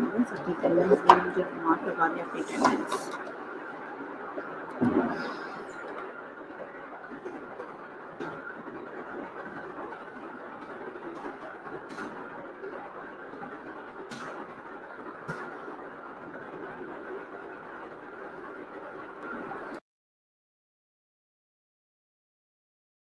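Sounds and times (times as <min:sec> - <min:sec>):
steady background noise: 0:00.0 - 0:19.8.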